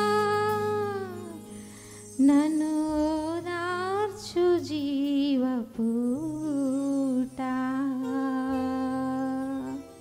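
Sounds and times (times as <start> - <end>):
soft sustained backing music: 0.0 - 10.0
woman singing devotional melody: 0.0 - 10.0.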